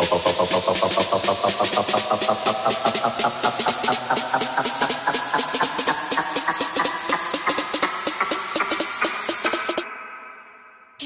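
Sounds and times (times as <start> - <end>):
fast pulsing synth hits: 0.0 - 9.8.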